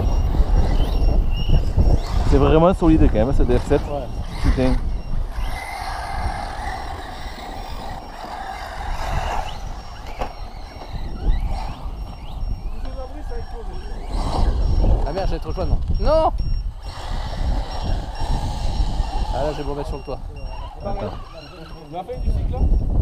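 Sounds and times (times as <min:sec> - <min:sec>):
electric motors whining: 0:00.0 - 0:23.0.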